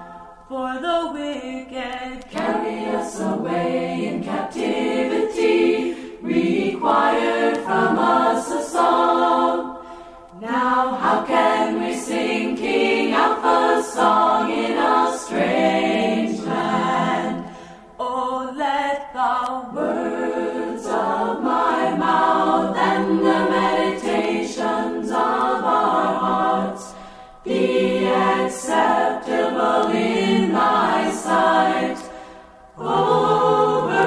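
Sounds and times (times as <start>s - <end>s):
group singing a cappella: 0.0s - 34.0s.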